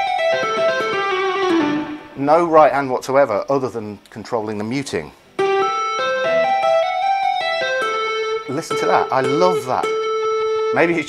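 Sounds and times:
electric guitar hammer-ons and pull-offs: 0:00.0 - 0:02.2, 0:05.3 - 0:11.0.

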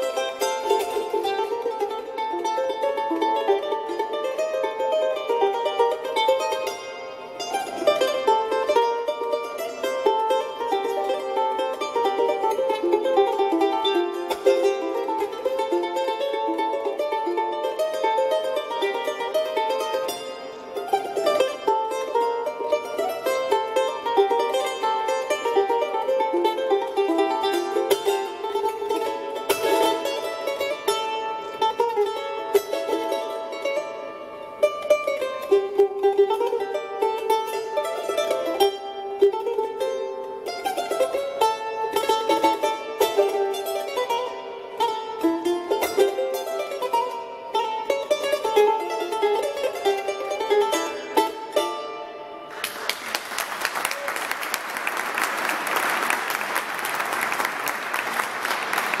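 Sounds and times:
charango plucked and strummed: 0:00.0 - 0:59.0
audience applause: 0:52.5 - 0:59.0.

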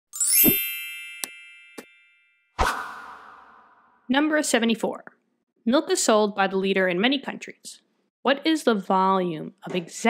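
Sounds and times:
bright upward sweeping chime: 0:00.2 - 0:03.4.

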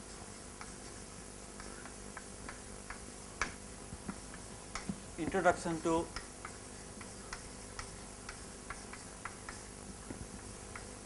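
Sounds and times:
chalk tapping on blackboard: 0:00.0 - 0:11.0
faint room hum: 0:00.0 - 0:11.0.

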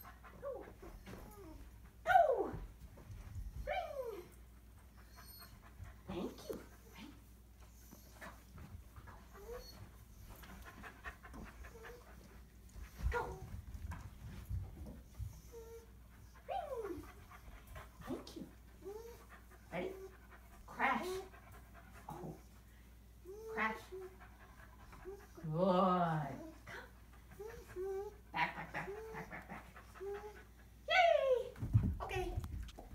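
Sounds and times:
puppy panting: 0:04.8 - 0:30.9
puppy soft vocal sounds: 0:23.3 - 0:30.9.

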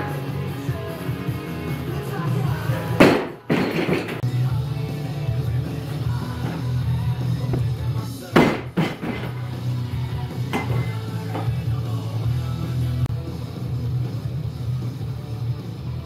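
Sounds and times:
rock music with steady beat: 0:00.0 - 0:16.0
barbell crashing onto wooden platform: 0:03.0 - 0:04.2, 0:08.4 - 0:09.4.

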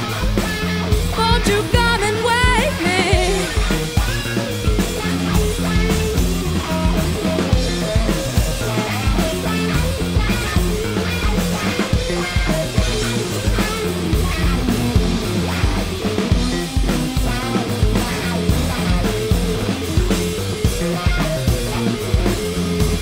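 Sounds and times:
distorted electric guitars: 0:00.0 - 0:23.0
drum kit beat: 0:00.0 - 0:23.0
electric bass: 0:00.0 - 0:23.0.

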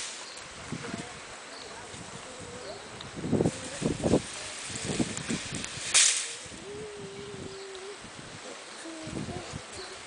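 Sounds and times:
coffee beans rattling on a sieve: 0:03.6 - 0:06.6.

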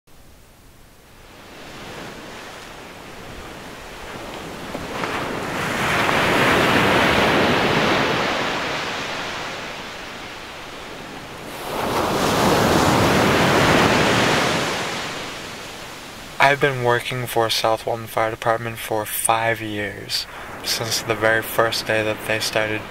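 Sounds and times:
ocean waves washing on sand: 0:00.2 - 0:22.9.

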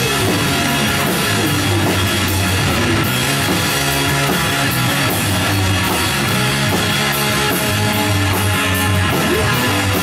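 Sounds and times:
bass guitar: 0:00.0 - 0:10.0
drum kit with cymbals: 0:00.0 - 0:10.0
electric guitar: 0:00.0 - 0:10.0.

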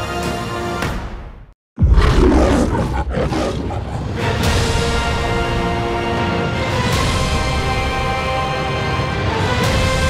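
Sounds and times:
trailer music: 0:00.0 - 0:10.0.

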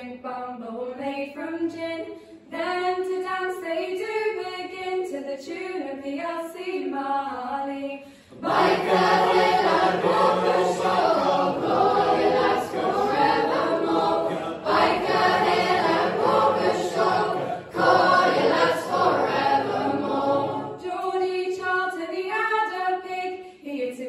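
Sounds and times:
youth choir singing: 0:08.3 - 0:20.9.

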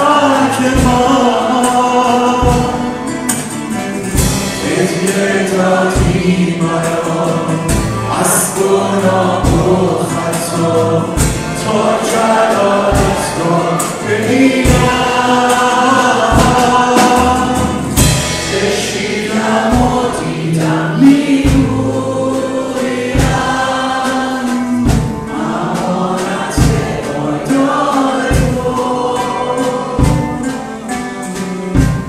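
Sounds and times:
acoustic guitar: 0:00.0 - 0:32.0
people singing worship song: 0:00.0 - 0:32.0
percussion strokes: 0:00.0 - 0:32.0.

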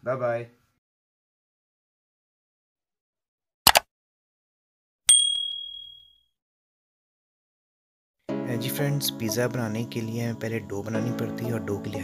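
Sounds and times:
notification bell ding: 0:05.1 - 0:06.2.

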